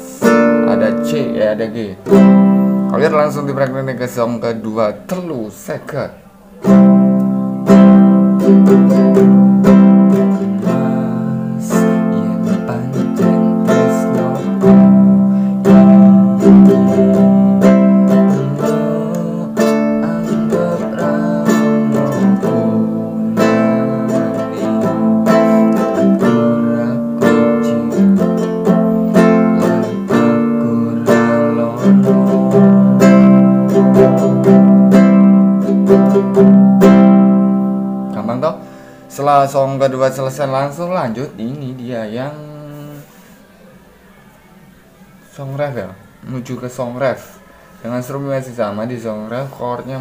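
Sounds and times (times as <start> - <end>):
nylon-string guitar strumming: 0.0 - 43.0.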